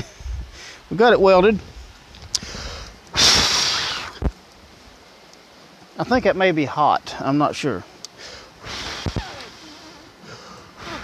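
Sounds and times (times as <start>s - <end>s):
grease hissing on hot metal: 1.7s - 4.3s, 8.2s - 11.0s.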